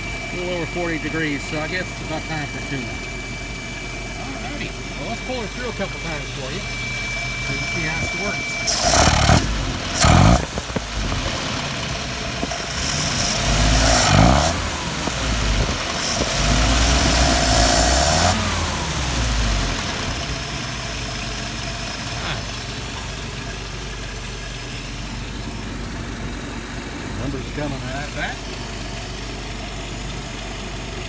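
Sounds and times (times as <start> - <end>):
engine idling: 0.0 - 31.0
engine revving: 4.2 - 21.1.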